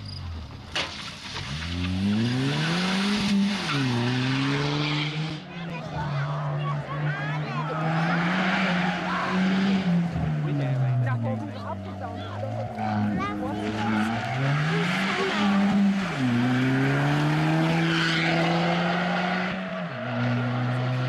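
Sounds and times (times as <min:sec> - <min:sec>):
rally car engine accelerating: 0:01.0 - 0:21.0
tyres squealing: 0:07.6 - 0:17.1.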